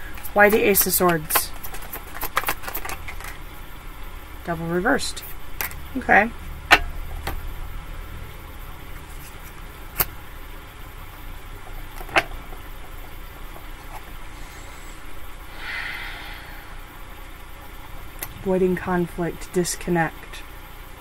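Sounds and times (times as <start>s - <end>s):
cards rustling: 0.0s - 3.4s, 8.9s - 10.2s
steady low rumble: 2.8s - 21.0s.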